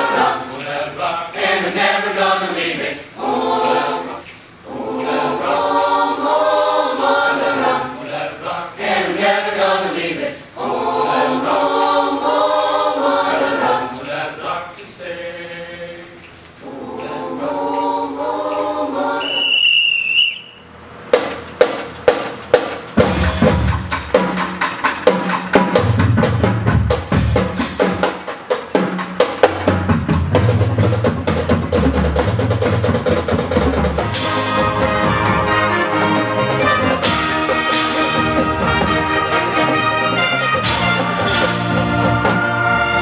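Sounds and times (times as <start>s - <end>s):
mixed choir singing: 0.0s - 19.7s, 34.0s - 43.0s
sharp percussion strikes: 20.4s - 43.0s.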